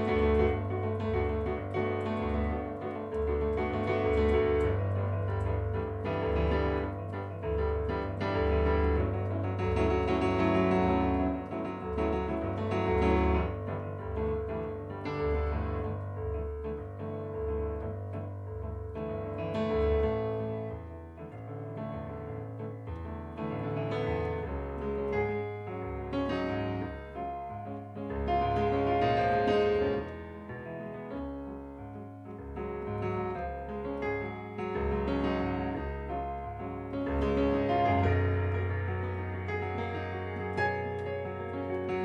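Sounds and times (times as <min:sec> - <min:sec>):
solo piano music: 0:00.0 - 0:42.0.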